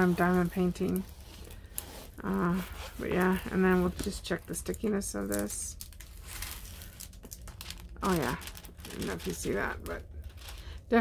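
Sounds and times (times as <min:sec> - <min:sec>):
plastic film peeling and crinkling: 0:00.0 - 0:11.0.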